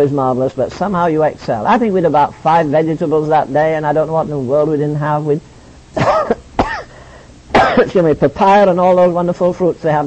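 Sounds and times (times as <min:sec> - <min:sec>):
man coughing: 0:06.0 - 0:07.9.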